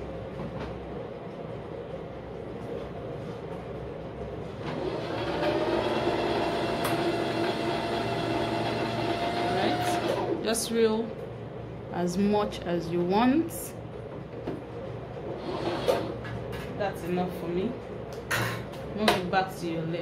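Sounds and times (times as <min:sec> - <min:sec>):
sewing machine motor whine: 0:04.6 - 0:10.5, 0:15.4 - 0:16.2.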